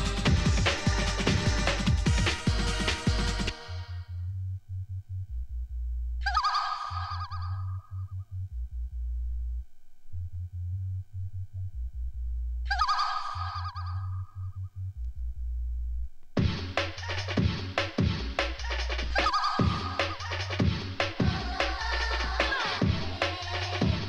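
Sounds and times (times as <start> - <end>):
warbling honking synth phrase: 0.0 - 4.2
chopped deep bass line: 0.0 - 6.3, 6.9 - 24.0.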